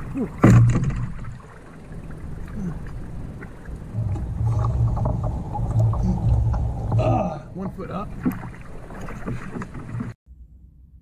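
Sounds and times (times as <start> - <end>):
water sloshing and splashing: 0.0 - 10.2.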